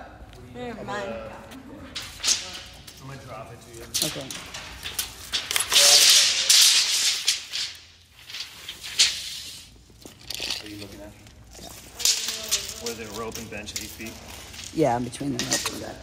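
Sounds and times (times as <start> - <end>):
tape measure rattling and scraping: 1.9 - 16.0.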